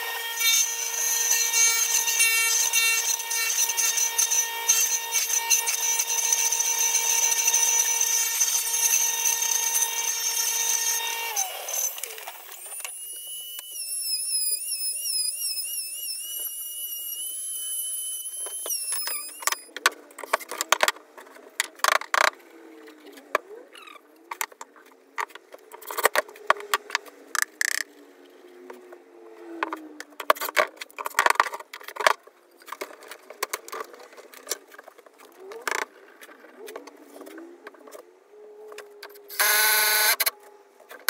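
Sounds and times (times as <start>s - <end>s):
table saw cutting board: 0.0s - 22.3s
power tool wavering whine: 0.0s - 23.4s, 37.7s - 41.0s.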